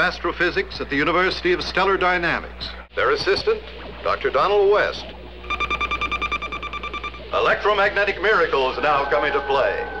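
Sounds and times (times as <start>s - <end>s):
rapid electronic beeping: 5.4s - 7.6s.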